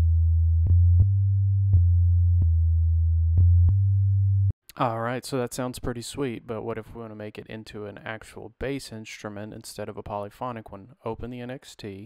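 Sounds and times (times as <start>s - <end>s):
deep sine bass notes: 0.0s - 4.6s.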